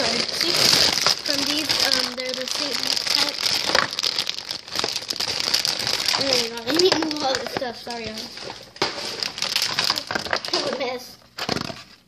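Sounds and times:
plastic packaging rustling: 0.0s - 12.0s.

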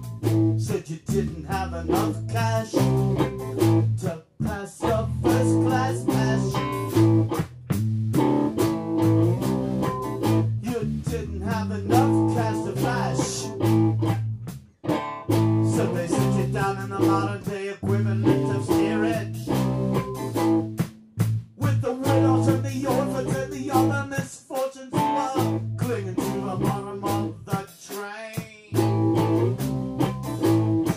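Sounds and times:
electric guitar: 0.0s - 21.3s, 22.0s - 24.2s, 24.9s - 27.6s, 28.7s - 30.9s
bass guitar: 0.0s - 27.7s, 28.7s - 30.9s
drum kit: 0.0s - 30.9s.

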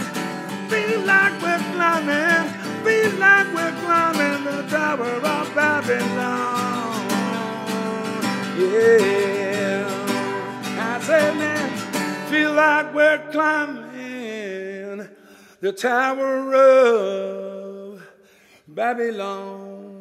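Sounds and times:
acoustic guitar strumming: 0.0s - 14.8s
man singing: 0.0s - 20.0s.

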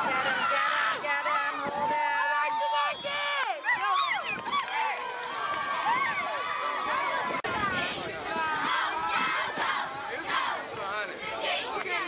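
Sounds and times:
football crowd shouting: 0.1s - 12.0s.

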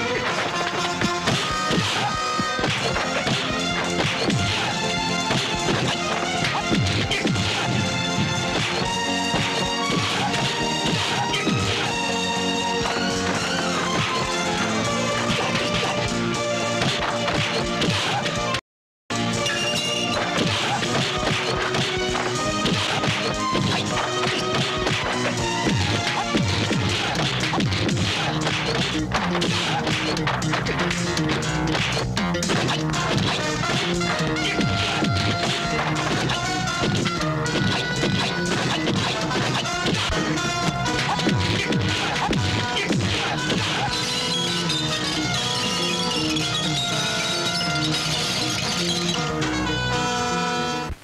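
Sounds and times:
orchestral film score: 0.0s - 50.9s
punch and kick hits: 1.0s - 4.7s, 5.3s - 11.9s, 20.2s - 30.7s.

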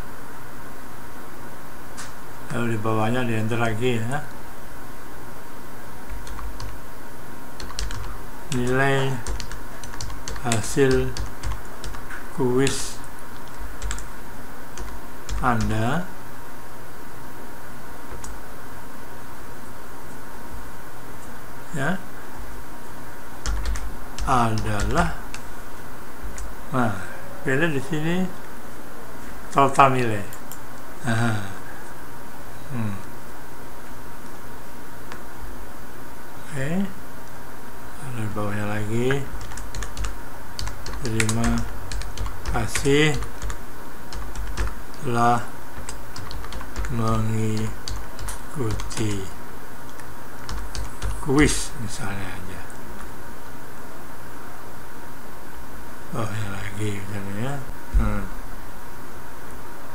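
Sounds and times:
steady low hum: 0.0s - 59.9s
typing on computer keyboard: 6.1s - 6.8s, 7.6s - 12.0s, 13.4s - 14.1s, 14.8s - 15.7s, 23.4s - 25.4s, 39.1s - 44.8s, 45.8s - 49.2s, 49.9s - 51.2s.

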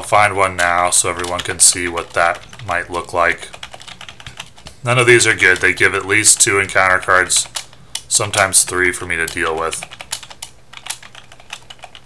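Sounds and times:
keyboard keys clicking: 0.6s - 2.7s, 3.5s - 12.0s.

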